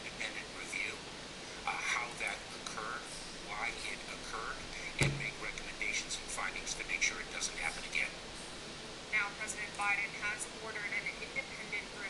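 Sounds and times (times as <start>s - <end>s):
dull thump: 5.0s - 5.4s
tinny news broadcast speech: 9.1s - 12.0s.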